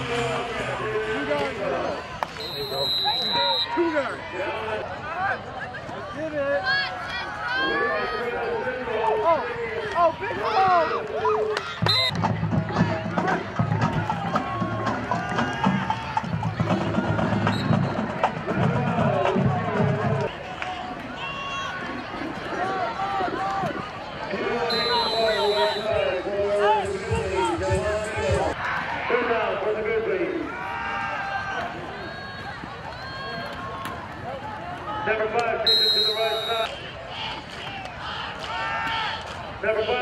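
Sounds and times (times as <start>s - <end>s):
football crowd shouting: 0.0s - 40.0s.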